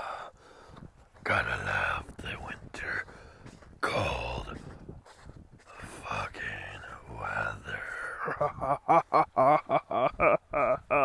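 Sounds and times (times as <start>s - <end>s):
person whispering: 1.2s - 3.2s, 3.8s - 4.8s, 5.7s - 8.2s.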